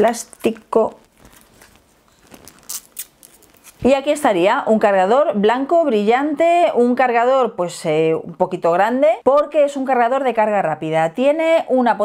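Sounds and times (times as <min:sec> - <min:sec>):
plastic film crinkling: 0:00.1 - 0:04.0
plastic film rustling: 0:00.1 - 0:04.0.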